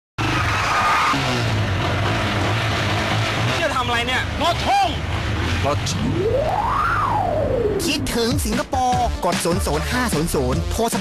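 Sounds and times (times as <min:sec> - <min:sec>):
street traffic: 0:00.2 - 0:10.6
high-pitched squeal: 0:05.9 - 0:08.2
man's voice: 0:07.8 - 0:11.0.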